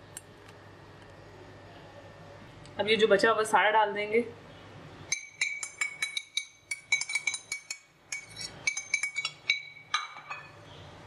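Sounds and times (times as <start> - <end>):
metal spoon tapping glass bowl: 5.1 - 10.6.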